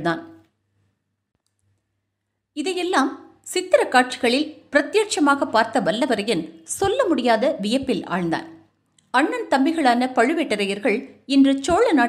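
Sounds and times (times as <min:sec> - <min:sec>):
woman narrating: 0:00.0 - 0:00.4, 0:02.6 - 0:12.0.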